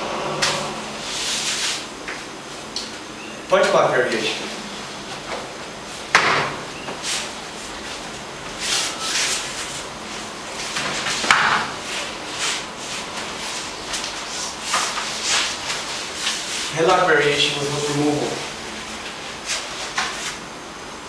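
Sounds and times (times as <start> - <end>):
fabric rubbing and rustling: 7.0 - 16.9.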